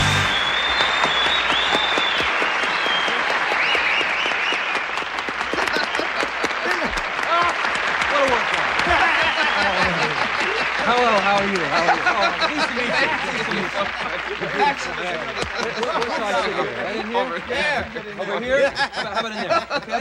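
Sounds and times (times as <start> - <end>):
audience applauding and cheering: 0.0 - 18.2.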